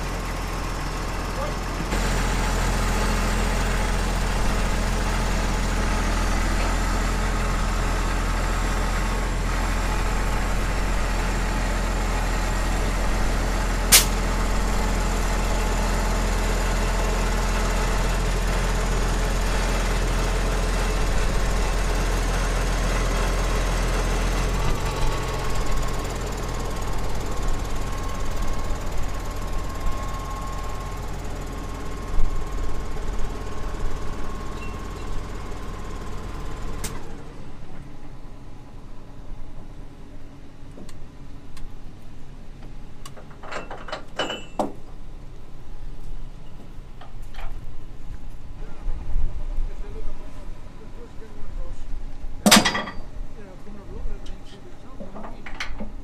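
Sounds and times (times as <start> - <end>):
tractor diesel engine running: 0.0 - 56.0
sharp click: 13.9 - 14.2.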